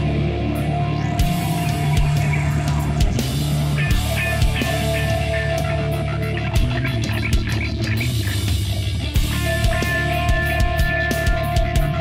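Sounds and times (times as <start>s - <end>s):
electric guitar: 0.0s - 12.0s
low bass: 0.0s - 12.0s.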